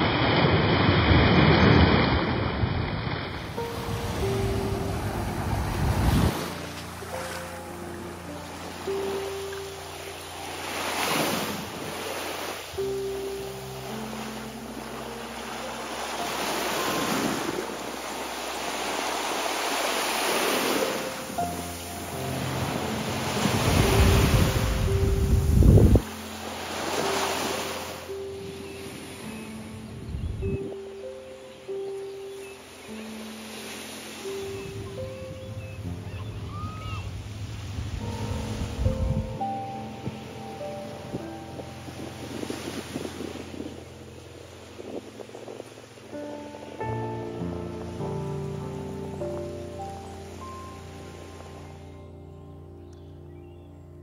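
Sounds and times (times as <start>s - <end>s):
surf washing on sandy beach: 0.0s - 51.9s
soft background music: 3.5s - 54.0s.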